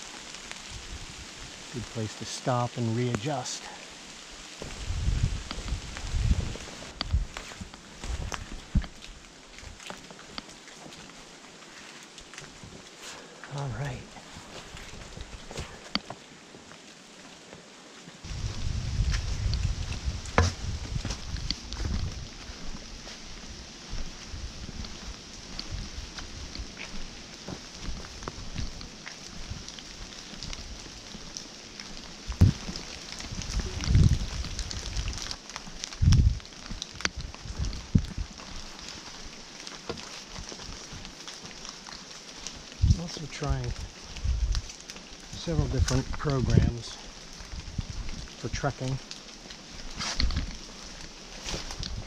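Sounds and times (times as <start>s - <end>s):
faint hiss: 0.0s - 9.3s, 42.1s - 44.6s
microphone rumble: 4.6s - 7.4s, 18.2s - 28.8s, 32.2s - 35.3s, 35.9s - 38.4s, 43.6s - 44.7s
footsteps on rocky trail: 4.6s - 16.8s, 18.2s - 52.0s.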